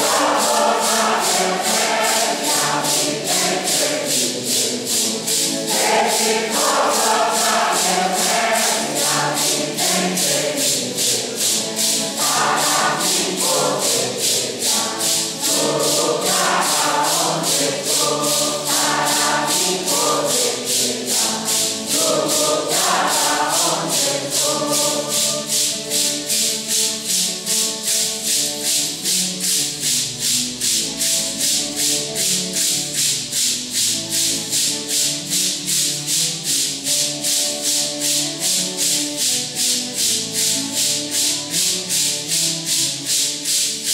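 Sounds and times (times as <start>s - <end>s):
congregation singing a hymn: 0.0s - 29.6s
maracas shaking: 0.0s - 43.9s.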